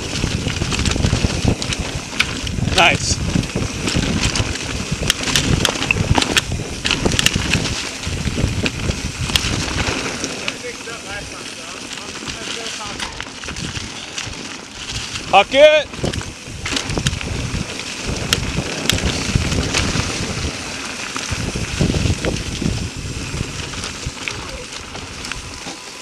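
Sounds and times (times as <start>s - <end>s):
bike clicks and rattles: 0.0s - 26.0s
tyres rolling over dirt and leaves: 0.0s - 26.0s
wind on microphone: 0.0s - 26.0s.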